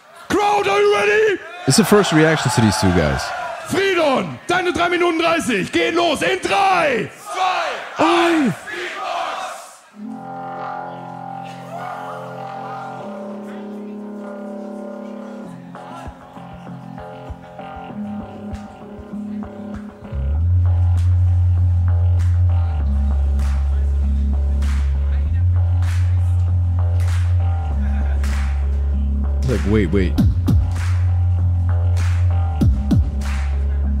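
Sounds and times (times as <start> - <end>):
crowd cheering: 0.0 - 16.6
deep bass layer: 19.1 - 34.0.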